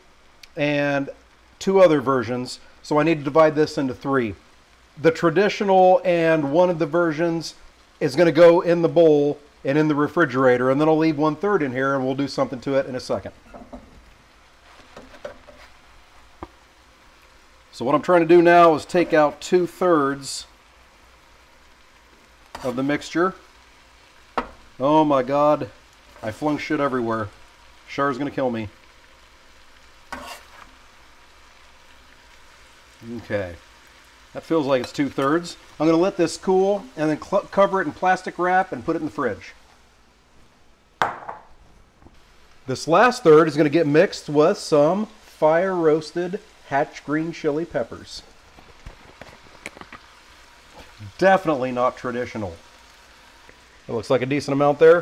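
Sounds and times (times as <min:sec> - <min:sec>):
glass bowl knocking on countertop: 0:41.0 - 0:41.5
kitchenware taps and clinks: 0:41.0 - 0:41.5.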